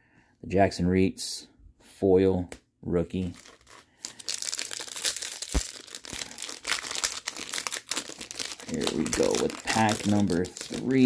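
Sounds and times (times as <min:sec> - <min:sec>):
plastic wrapper crinkling: 0:03.2 - 0:11.0.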